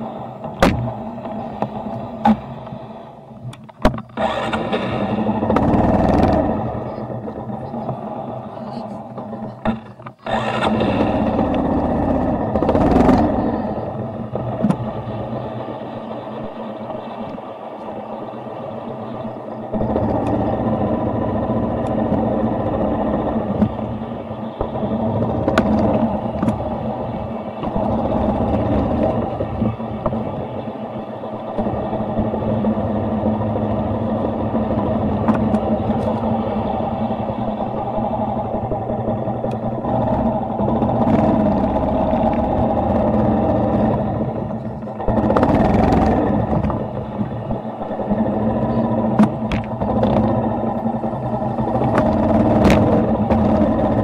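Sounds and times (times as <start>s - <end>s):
motorcycle engine running: 4.0s - 54.0s.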